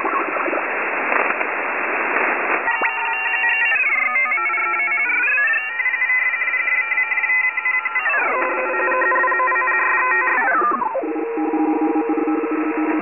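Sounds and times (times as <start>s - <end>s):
sliding electronic tones: 2.6s - 6.0s, 7.3s - 13.0s.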